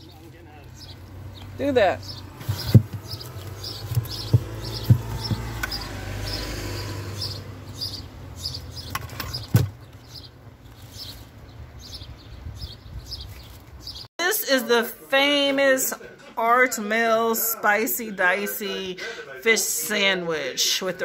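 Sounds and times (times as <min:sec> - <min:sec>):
bird chirping: 0:00.0 - 0:14.1
books knocking on wooden shelf: 0:02.4 - 0:05.8.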